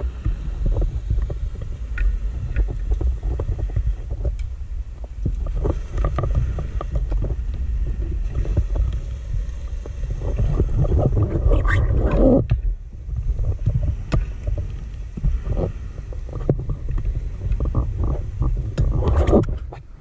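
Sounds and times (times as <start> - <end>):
steady low rumble: 0.0 - 20.0
underwater breathing bubbles: 13.1 - 19.1.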